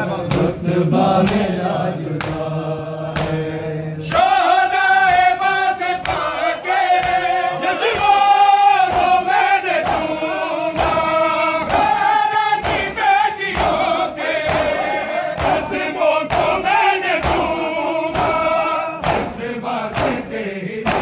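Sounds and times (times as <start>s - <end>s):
men chanting in unison: 0.0s - 21.0s
hand slaps on bare chests: 1.2s - 1.6s, 2.2s - 2.5s, 3.1s - 21.0s.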